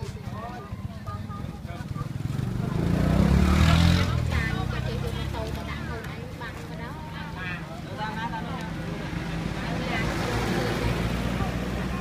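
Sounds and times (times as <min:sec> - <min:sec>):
vehicle engine running: 0:00.0 - 0:12.0
voices nearby: 0:00.0 - 0:12.0.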